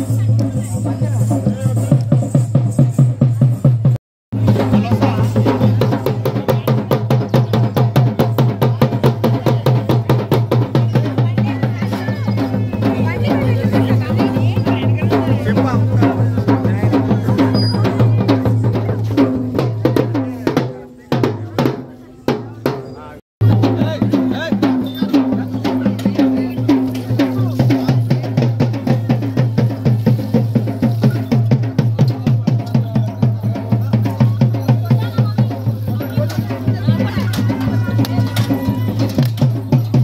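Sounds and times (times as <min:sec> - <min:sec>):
drums beating a rapid rhythm: 0:00.0 - 0:40.0.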